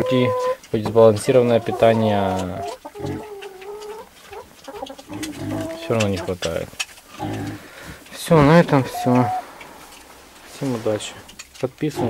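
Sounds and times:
hen calling: 0.0 - 12.0
hen clucking: 0.0 - 12.0.

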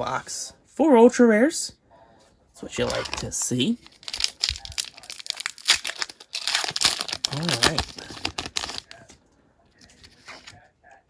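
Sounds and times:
foil wrapper crinkling: 2.8 - 9.0.

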